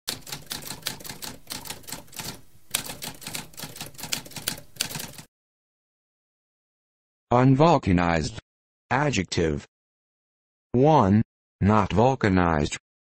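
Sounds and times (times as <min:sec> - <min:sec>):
typewriter keys striking: 0:00.1 - 0:05.3.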